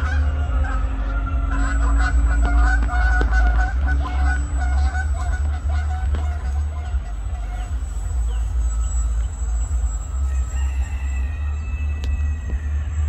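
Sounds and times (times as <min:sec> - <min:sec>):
geese honking: 0:00.0 - 0:13.0
loud low rumble: 0:00.0 - 0:13.0.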